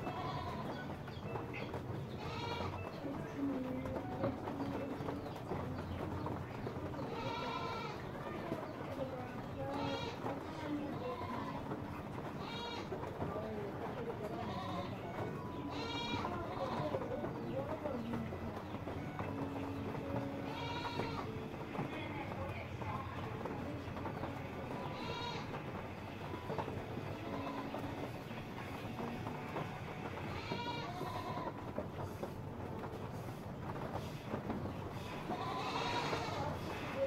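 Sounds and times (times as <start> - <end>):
animal bleating: 0.0 - 0.7, 2.2 - 2.8, 7.0 - 8.1, 9.7 - 10.4, 11.0 - 11.7, 12.4 - 13.0, 14.4 - 17.1, 20.3 - 21.3, 24.7 - 25.7, 27.2 - 28.0, 30.3 - 31.6, 35.2 - 36.9.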